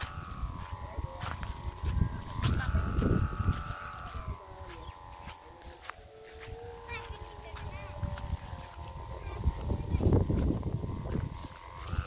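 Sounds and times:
kite hummer droning: 0.0 - 12.0.

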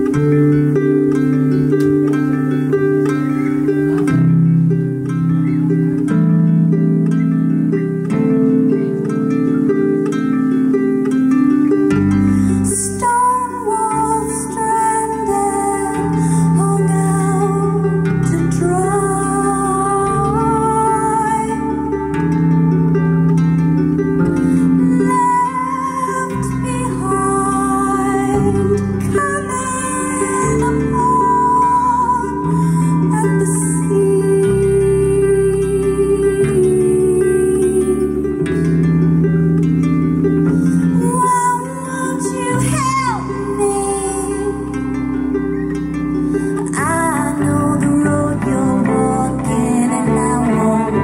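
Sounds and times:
electric bass: 0.0 - 51.0
harp plucking repeated notes: 0.0 - 51.0.

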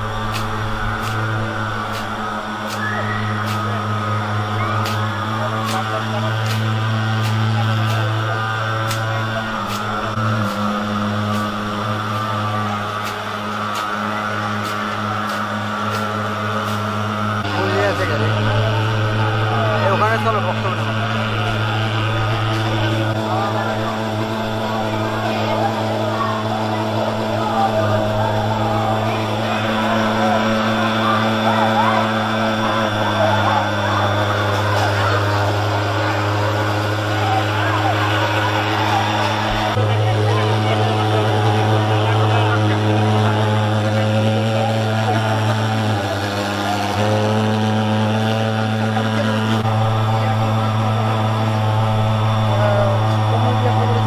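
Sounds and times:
fogging machine buzzing drone: 0.0 - 54.0.

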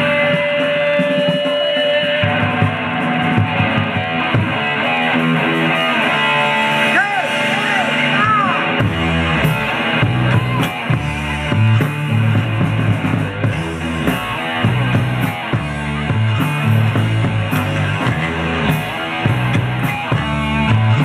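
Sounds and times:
electric guitar blues-rock riff: 0.0 - 21.0
low bass: 2.2 - 21.0.

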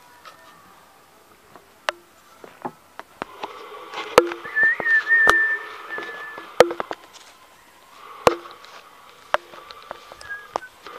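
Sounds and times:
held whistled note: 4.2 - 6.9, 10.1 - 10.9.

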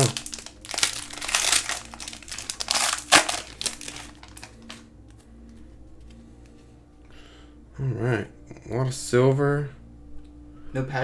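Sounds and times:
foil wrapper tearing and crinkling: 0.0 - 4.8.

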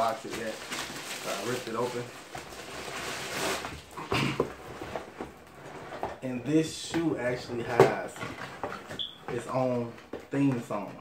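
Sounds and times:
plastic bag rustling and crinkling: 0.0 - 6.2.

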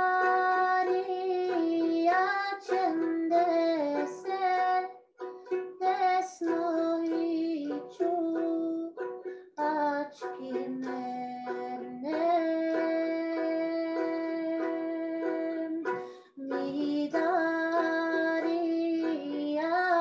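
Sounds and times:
woman singing: 0.0 - 4.9, 5.8 - 20.0
plucked string instrument: 0.0 - 20.0.

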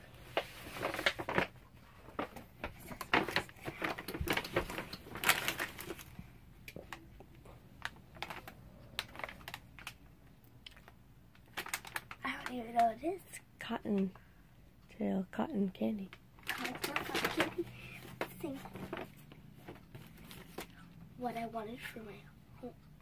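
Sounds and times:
paper and plastic bag crinkling: 0.2 - 7.1, 7.8 - 12.9, 16.1 - 20.8.

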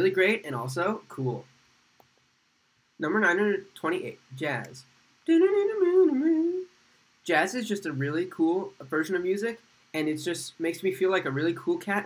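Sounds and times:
man humming a tune: 5.3 - 6.7.

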